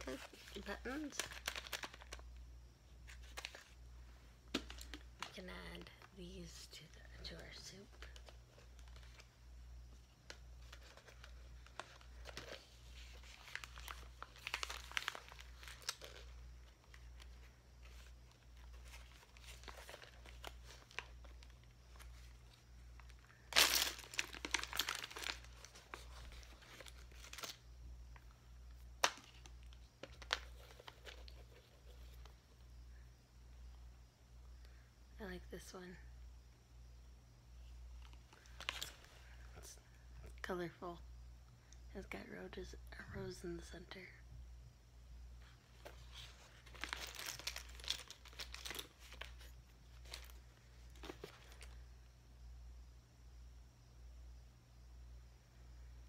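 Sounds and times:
plastic bag crinkling: 0.0s - 2.2s, 10.3s - 27.6s, 45.7s - 51.8s.

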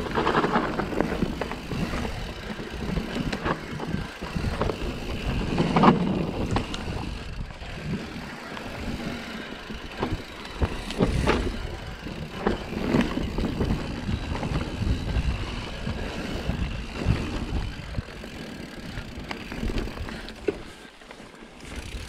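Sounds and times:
bike knocking and rattling on bumps: 0.0s - 22.0s
bike tyres rumbling on dirt: 0.0s - 22.0s.

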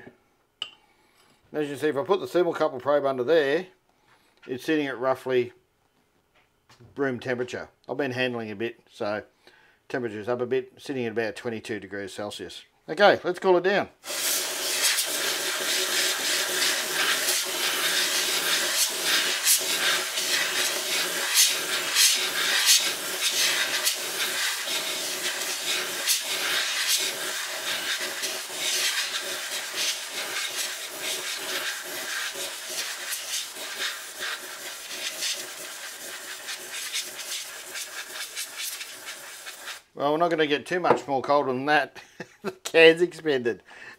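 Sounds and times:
air duster can hissing: 14.0s - 40.0s.

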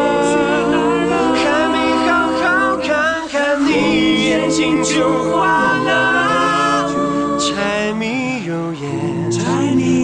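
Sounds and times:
vocal group singing chords: 0.0s - 10.0s.

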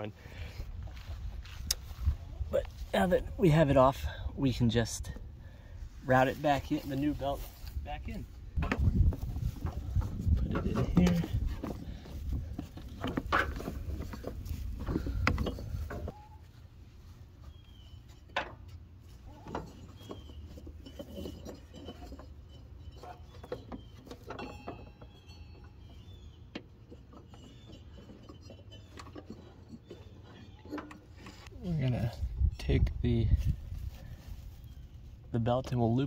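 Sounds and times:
rubber belt rubbing on metal pulleys: 19.1s - 31.5s.

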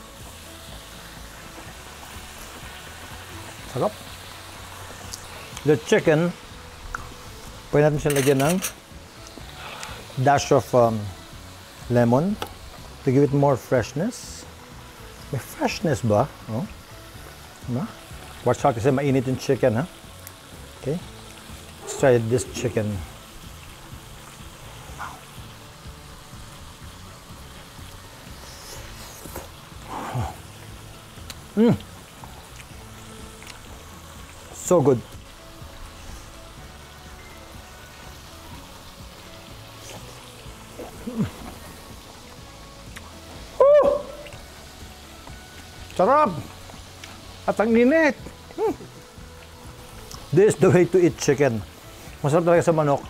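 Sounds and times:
soft background music: 0.0s - 53.0s
man speaking: 21.8s - 23.0s.

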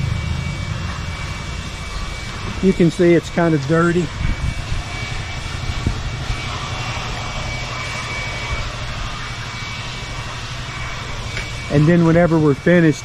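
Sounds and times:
faint high whine: 0.0s - 13.0s
machine humming: 0.0s - 13.0s.

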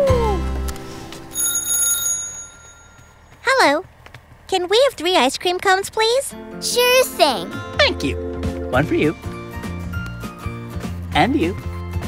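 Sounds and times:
bright bell ding: 1.3s - 3.2s.

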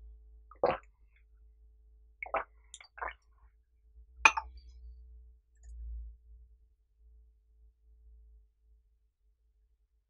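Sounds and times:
tea slurping sips: 0.6s - 0.8s, 2.2s - 3.2s.

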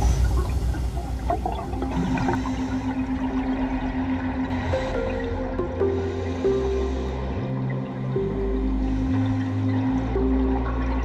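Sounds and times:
steady low tone: 0.0s - 11.0s
water rushing underwater: 0.0s - 11.0s.

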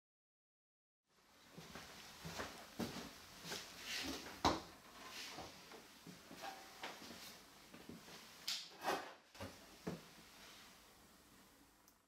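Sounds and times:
footsteps: 1.5s - 8.4s.

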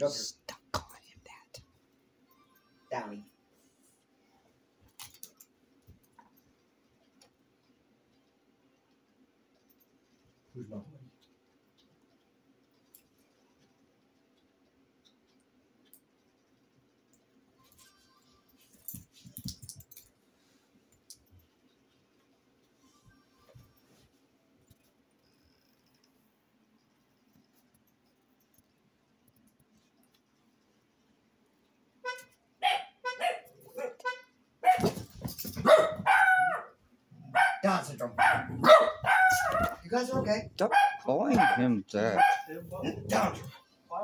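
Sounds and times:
low room noise: 0.0s - 44.0s
dog yipping and barking: 32.6s - 35.0s, 35.6s - 39.9s, 40.6s - 42.6s.

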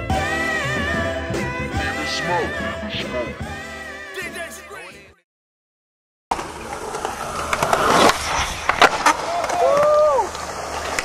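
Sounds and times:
person calling out: 4.2s - 5.2s
skateboard clacks: 6.3s - 11.0s
skateboard wheels rolling on concrete: 6.3s - 11.0s.

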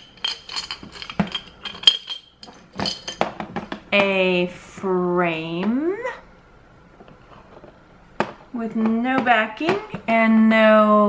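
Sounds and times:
metal trinkets clinking in glass jar: 0.0s - 3.2s.

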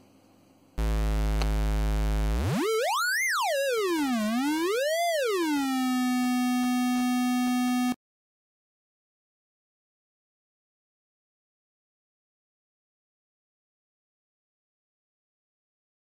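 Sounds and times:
synth square-wave oscillator sweeping: 0.8s - 8.0s.

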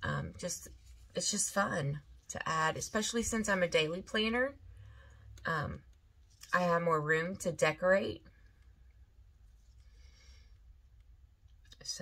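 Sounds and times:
woman speaking: 0.0s - 4.6s, 5.4s - 8.2s, 11.8s - 12.0s
low room hum: 0.0s - 12.0s.

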